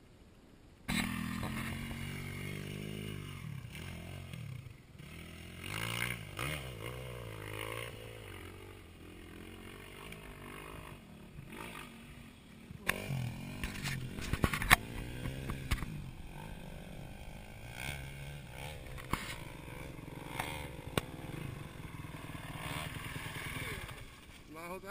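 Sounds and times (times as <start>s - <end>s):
dirt bike engine revving: 0.9s - 24.5s
dirt bike engine idling: 0.9s - 24.9s.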